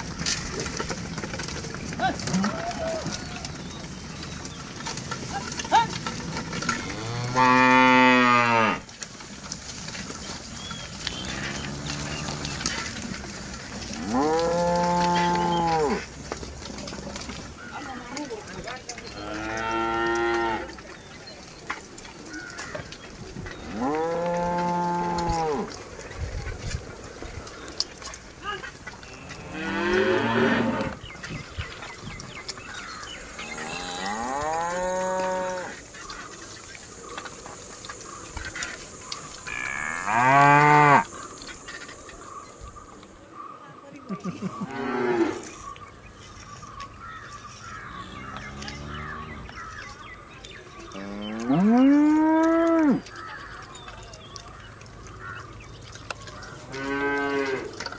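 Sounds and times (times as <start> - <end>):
cow mooing: 6.7 - 8.8, 11.1 - 12.7, 13.9 - 16.0, 19.2 - 20.8, 23.7 - 25.7, 29.2 - 31.0, 33.5 - 35.8, 39.5 - 41.1, 56.7 - 57.8.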